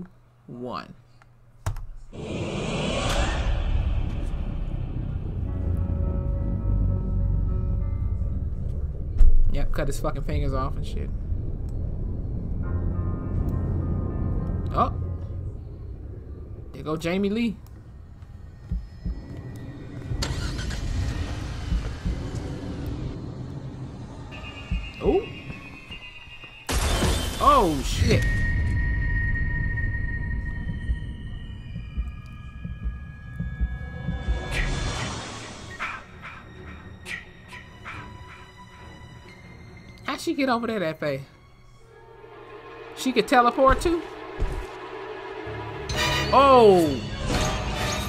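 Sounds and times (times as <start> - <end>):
dark low rumbling drone score: 2.1 - 40.1, 41.4 - 48.0
hissing swell: 2.2 - 7.3, 41.7 - 46.8
car engine rumbling: 3.4 - 25.0
steady high tone: 27.4 - 35.7, 41.9 - 47.3.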